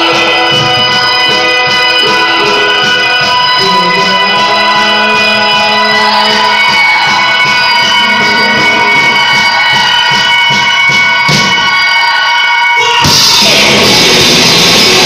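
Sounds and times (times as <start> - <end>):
distorted guitars droning chord: 0.0 - 10.7, 12.8 - 15.0.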